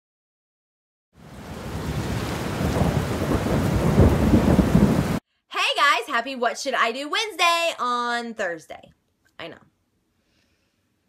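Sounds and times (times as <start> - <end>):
rain-like hiss: 1.2 - 5.2
deep thunder rumbling: 1.4 - 5.2.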